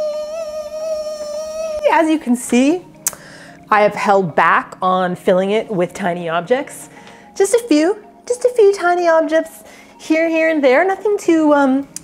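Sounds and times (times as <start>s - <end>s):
woman singing a high held note: 0.0s - 2.3s
woman talking: 1.8s - 2.9s, 3.7s - 11.9s.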